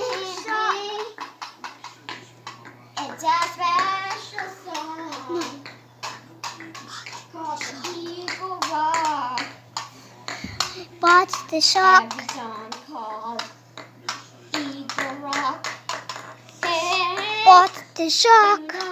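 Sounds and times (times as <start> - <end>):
child's sing-song voice: 0.0 - 1.3, 3.0 - 5.7, 7.0 - 9.6, 11.0 - 13.5, 14.5 - 15.7, 16.5 - 18.9.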